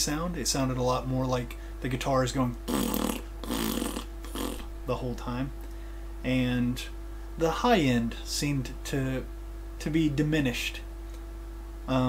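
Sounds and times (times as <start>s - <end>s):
man blowing raspberries: 2.6s - 4.7s.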